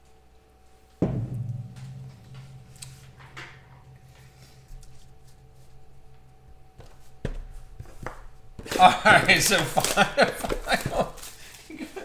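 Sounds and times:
man talking: 0:08.8 - 0:11.1.

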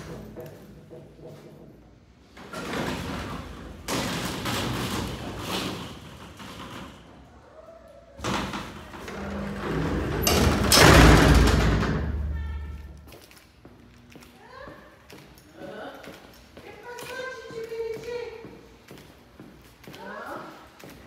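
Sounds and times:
elevator door thud and rumble: 0:08.2 - 0:13.0.

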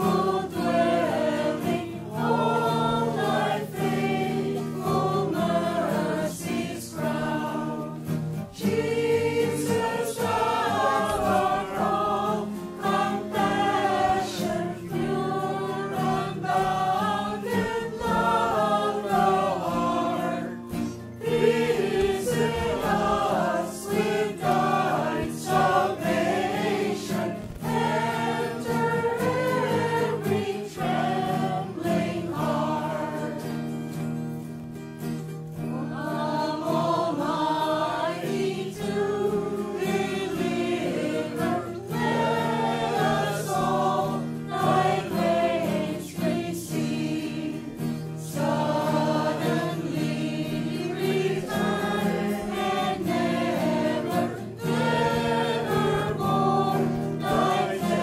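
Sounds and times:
sustained accompaniment: 0:00.0 - 0:34.6
choir singing a hymn: 0:00.0 - 0:34.7, 0:35.5 - 0:58.0.

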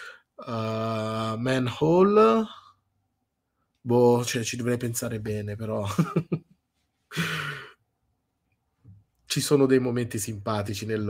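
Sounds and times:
man sighing: 0:07.1 - 0:07.8.

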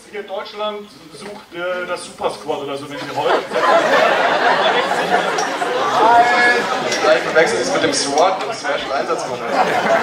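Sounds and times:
people talking over microphones: 0:00.0 - 0:10.0.

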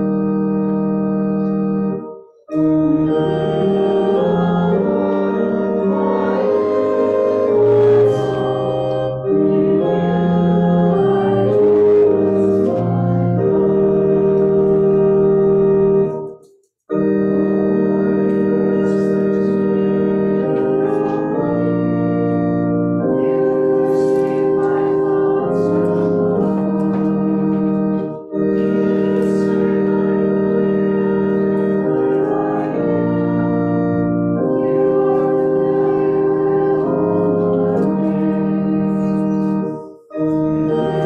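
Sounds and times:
church organ chords: 0:00.0 - 0:41.0.

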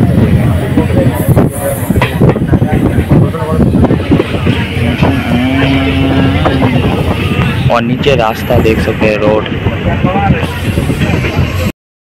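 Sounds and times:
rushing air: 0:00.0 - 0:11.7
steady low hum: 0:00.0 - 0:11.7
train rumble: 0:00.0 - 0:11.7
wheels clattering on rails: 0:00.0 - 0:11.7.

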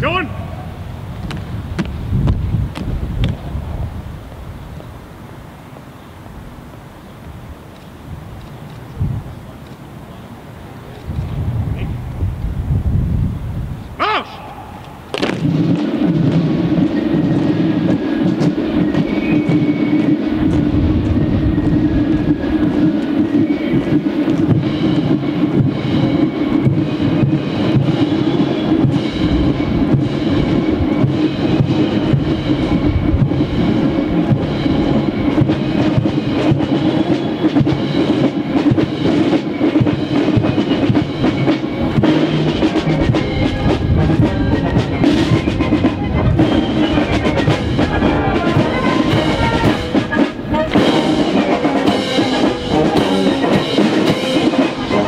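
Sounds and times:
military brass band march: 0:14.0 - 0:55.0.

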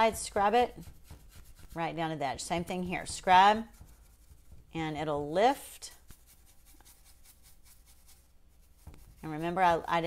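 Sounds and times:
paintbrush scrubbing a surface: 0:00.0 - 0:10.0.

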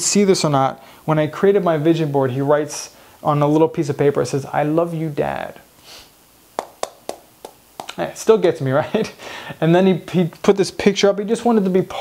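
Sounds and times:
mouth clicks and lip smacks: 0:06.6 - 0:08.0.

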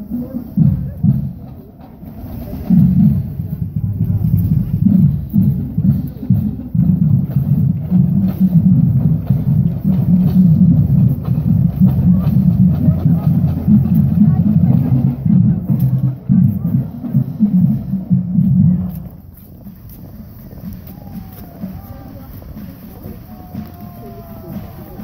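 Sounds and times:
marching drumline playing: 0:00.0 - 0:25.0.

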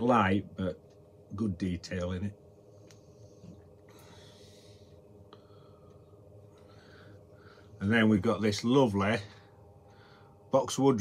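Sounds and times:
faint steady hum: 0:00.0 - 0:11.0
soft breath: 0:02.7 - 0:07.8, 0:09.3 - 0:10.5.

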